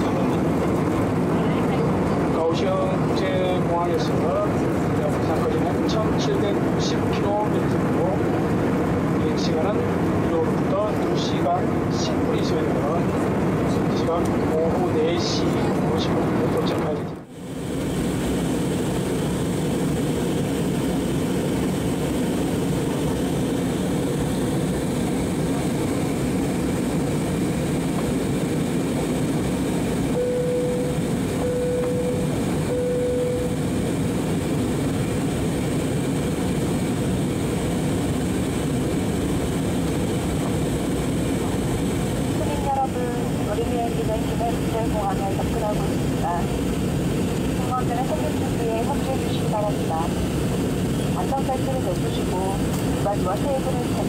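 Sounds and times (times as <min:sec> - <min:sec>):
jet airliner cabin noise: 0:00.0 - 0:54.0
short beeps: 0:30.1 - 0:33.6.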